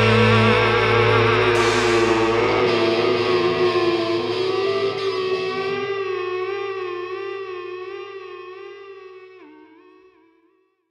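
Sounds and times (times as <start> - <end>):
held rock note with vibrato: 0.0 - 8.2.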